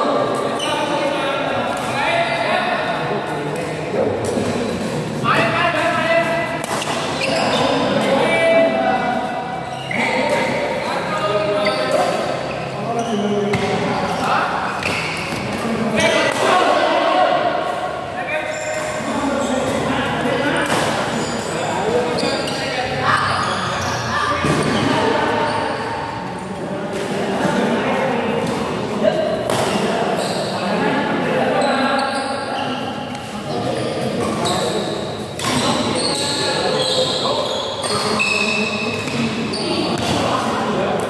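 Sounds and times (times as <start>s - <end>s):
rackets hitting shuttlecock: 6.2s - 7.2s, 29.4s - 29.9s.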